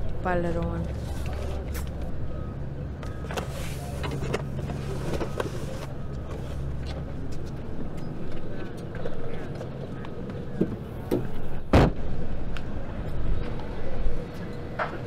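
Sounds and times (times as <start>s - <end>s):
low motor rumble: 0.0s - 15.0s.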